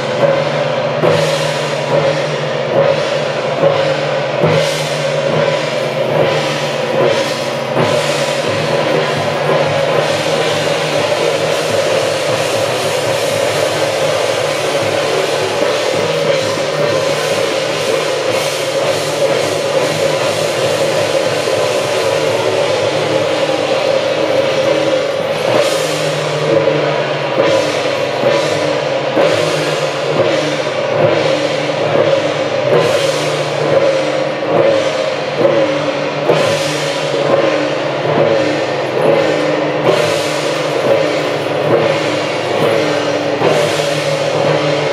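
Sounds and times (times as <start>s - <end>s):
cymbal strokes: 0.0s - 44.9s
drums beating: 0.0s - 44.9s.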